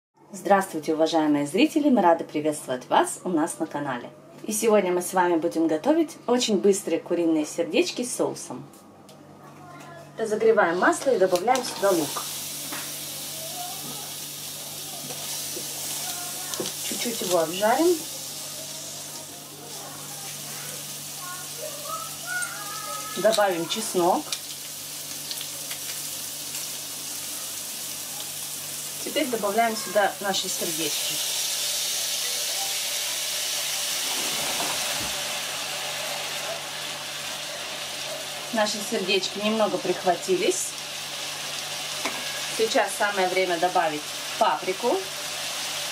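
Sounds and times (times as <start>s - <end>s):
onion sizzling in oil: 10.8s - 45.9s.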